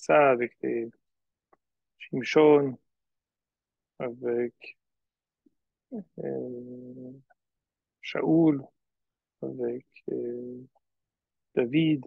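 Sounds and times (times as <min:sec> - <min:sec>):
man speaking: 0:00.0 - 0:01.0, 0:02.0 - 0:02.8, 0:04.0 - 0:04.8, 0:06.2 - 0:07.4, 0:08.0 - 0:08.8, 0:09.4 - 0:10.8, 0:11.5 - 0:12.0.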